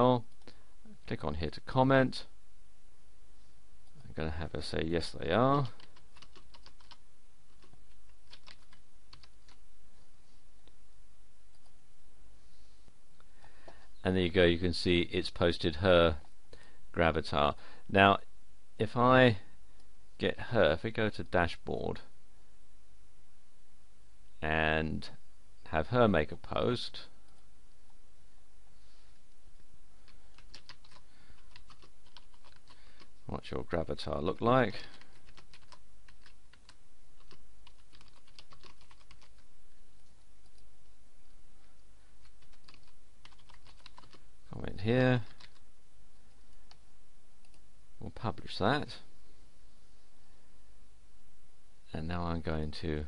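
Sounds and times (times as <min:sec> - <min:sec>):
low steady hum: 0:00.0 - 0:53.0
computer keyboard typing: 0:05.6 - 0:09.6, 0:30.0 - 0:33.1, 0:35.0 - 0:39.4, 0:42.2 - 0:44.2, 0:45.3 - 0:45.6.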